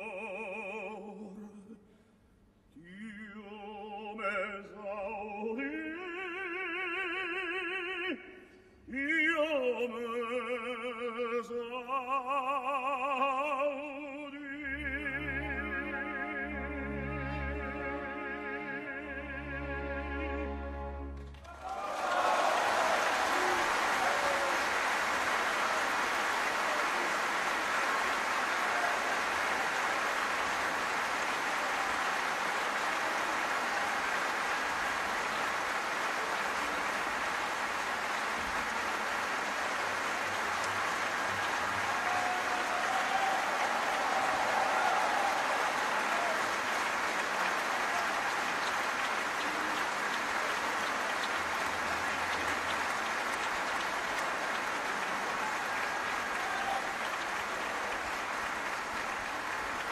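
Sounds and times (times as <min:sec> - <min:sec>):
large audience applauding: 0:21.1 - 0:59.9.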